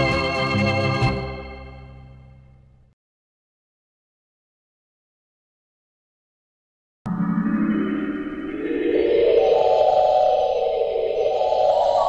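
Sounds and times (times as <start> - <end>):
organ playing held chords: 7.1 - 12.0.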